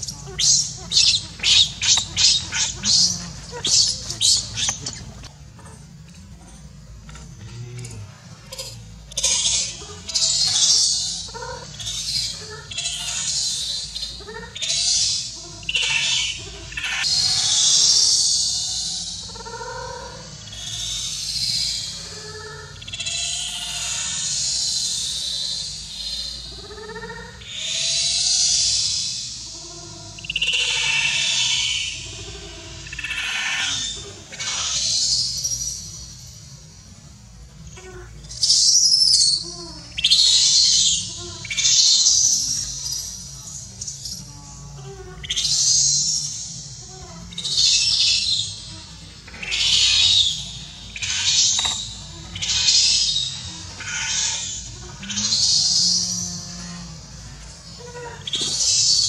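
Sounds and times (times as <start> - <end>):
baby monkey screaming: 0.0 - 5.8, 8.5 - 36.0, 37.7 - 59.0.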